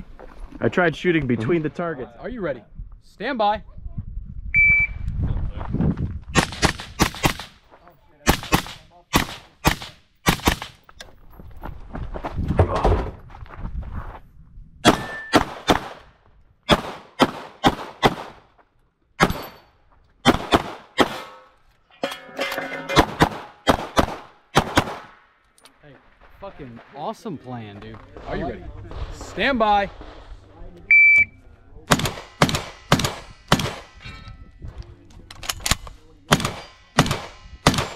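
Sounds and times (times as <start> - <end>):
gunshots in quick strings: 31.9 - 34.0.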